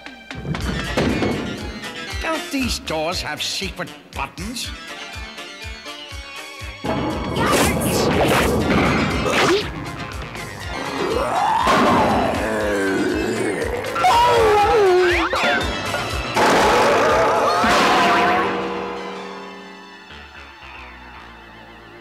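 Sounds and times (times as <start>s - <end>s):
loud noisy crash: 6.9s - 10.1s, 16.3s - 19.0s
cartoon music: 6.9s - 18.7s.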